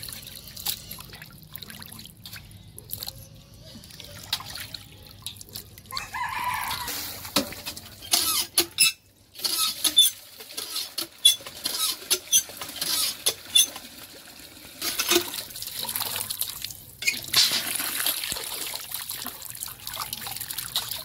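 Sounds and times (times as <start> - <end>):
hand pump clanking and squeaking: 6.8 - 13.8, 14.8 - 15.4, 17.0 - 17.7.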